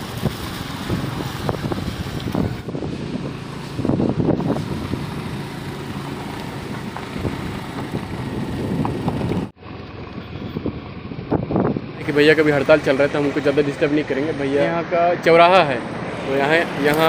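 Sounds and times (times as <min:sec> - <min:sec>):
wind noise on microphone: 0:00.0 - 0:12.8
motor scooter engine running: 0:00.0 - 0:13.4.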